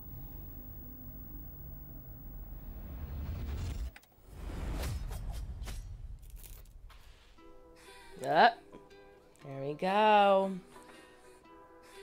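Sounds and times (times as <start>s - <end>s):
deep rumble: 0.0s - 6.9s.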